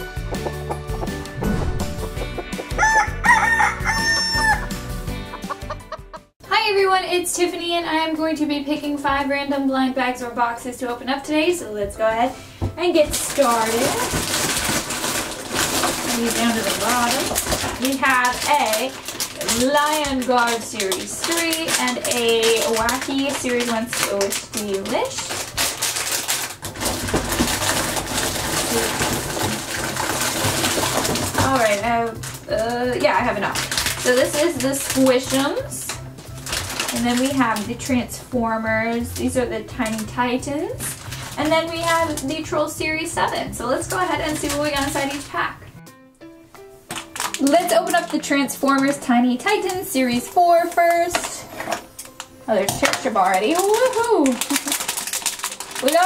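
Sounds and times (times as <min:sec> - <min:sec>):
music jingle: 0:00.0 - 0:06.1
rooster crowing and clucking: 0:01.8 - 0:06.0
plastic packets rustling and crinkling: 0:12.9 - 0:45.5, 0:46.9 - 0:56.0.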